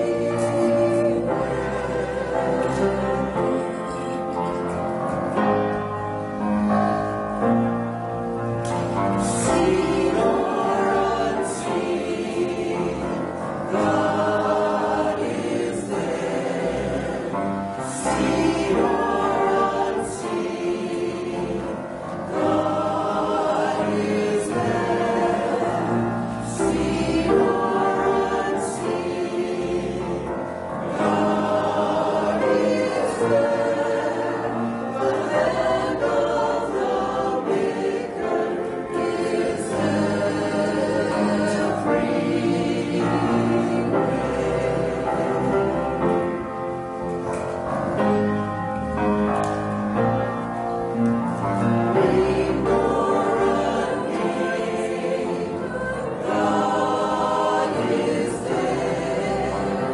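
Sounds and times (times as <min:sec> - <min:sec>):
group singing a hymn: 0:00.0 - 0:59.9.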